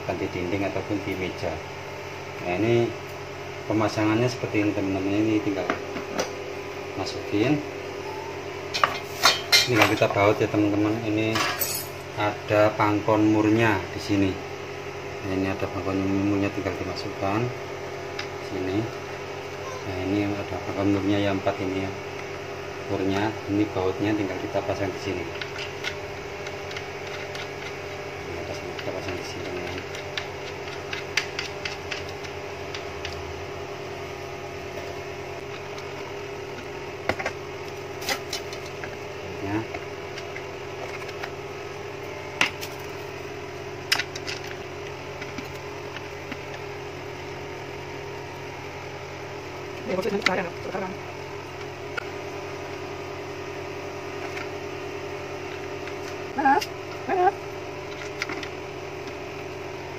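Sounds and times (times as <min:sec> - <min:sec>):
steady hum: 0:00.0 - 0:59.9.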